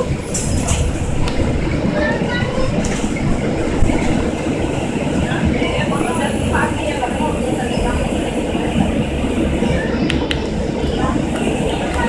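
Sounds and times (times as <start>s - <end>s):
bus body clicks and rattles: 0.0s - 4.6s
bus engine and road drone: 0.0s - 12.0s.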